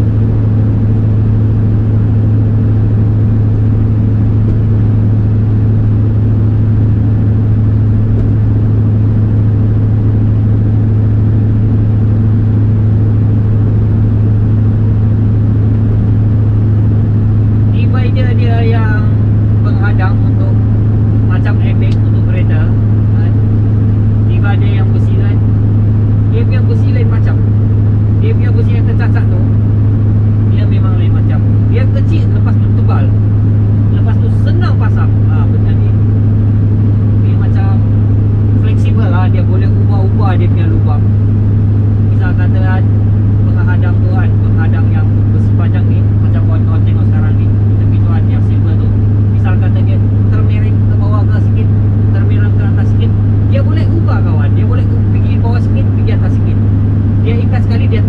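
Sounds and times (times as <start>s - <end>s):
truck engine and road noise drone: 0.0s - 58.0s.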